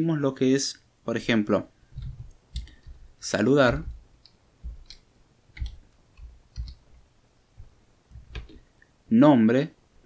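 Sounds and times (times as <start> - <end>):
computer keyboard key clicks: 2.0 - 2.9, 5.6 - 6.8.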